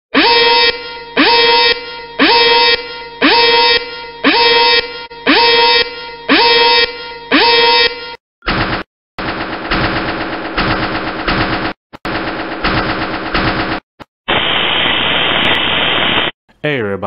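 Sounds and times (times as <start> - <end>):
machine-gun fire bursts: 9.2 - 13.8.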